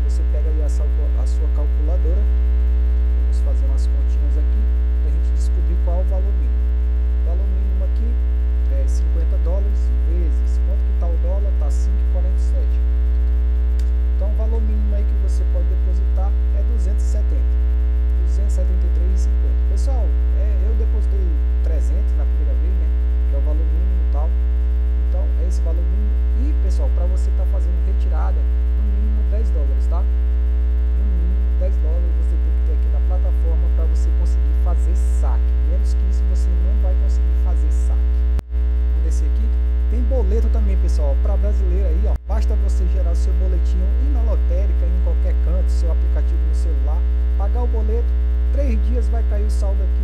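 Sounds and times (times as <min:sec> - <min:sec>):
electrical mains hum: 0:00.0 - 0:50.0
faint wavering voices: 0:25.1 - 0:30.1, 0:30.9 - 0:38.2.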